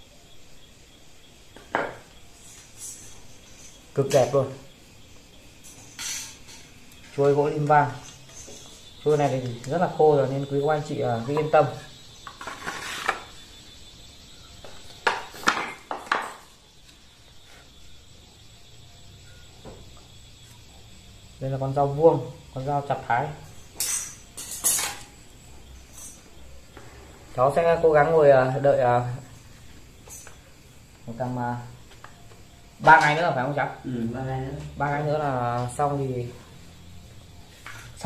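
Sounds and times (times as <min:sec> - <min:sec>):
insects chirring: 0:00.0 - 0:38.0.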